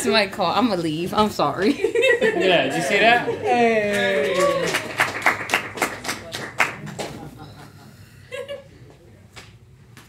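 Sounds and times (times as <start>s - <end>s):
person clapping hands: 3.9s - 7.3s.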